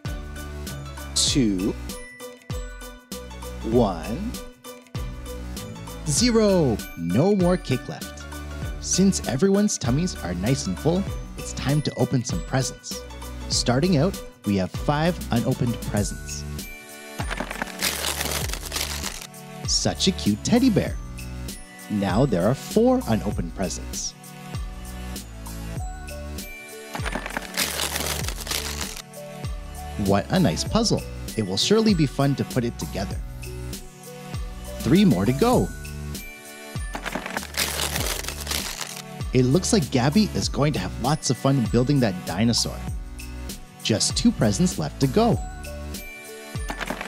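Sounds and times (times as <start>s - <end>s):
background music: 0.0s - 47.0s
wrapping paper tearing and crinkling: 17.3s - 19.3s, 27.0s - 29.0s, 37.0s - 39.0s, 46.7s - 47.0s.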